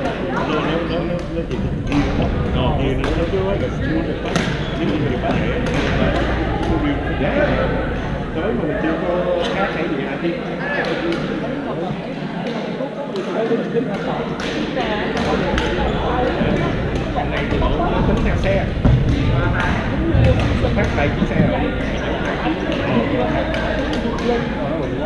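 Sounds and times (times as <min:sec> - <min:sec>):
babble of voices: 0:00.0 - 0:25.0
rackets striking shuttlecocks: 0:04.2 - 0:06.8.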